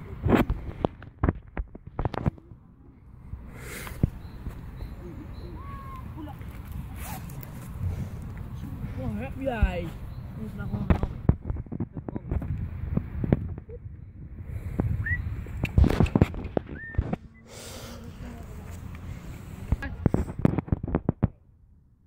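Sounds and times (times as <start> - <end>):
wind rumbling on microphone: 0.0 - 21.6
boys talking: 4.8 - 7.5, 8.5 - 11.2.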